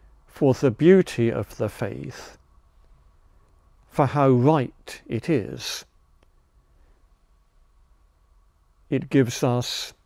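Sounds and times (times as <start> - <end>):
faint steady whine: 0.0 - 10.0
man talking: 0.3 - 2.4, 3.9 - 5.9, 8.9 - 10.0.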